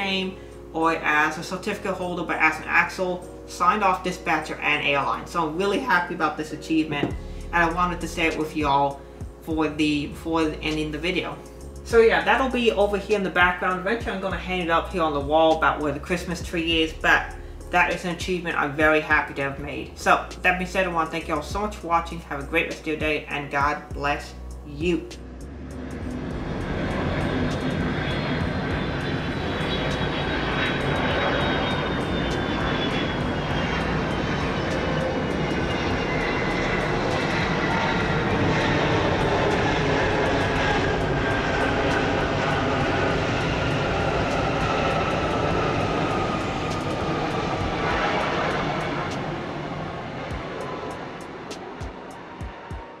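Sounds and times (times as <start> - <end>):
jet airliner engines landing: 0.0 - 53.0
thin engine whine falling: 25.1 - 53.0.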